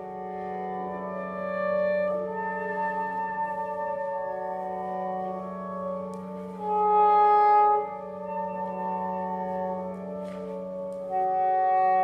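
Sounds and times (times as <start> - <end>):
soprano saxophone long notes: 0.0 - 12.0.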